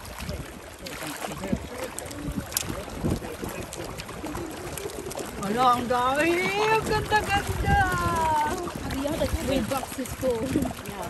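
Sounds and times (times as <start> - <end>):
faint voices: 0.0 - 11.0
water around a boat: 0.0 - 11.0
wind noise: 0.0 - 11.0.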